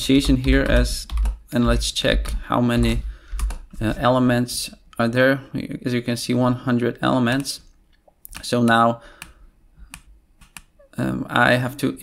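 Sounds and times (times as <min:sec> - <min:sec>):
computer keyboard clicks: 0:00.1 - 0:01.4, 0:03.4 - 0:03.7.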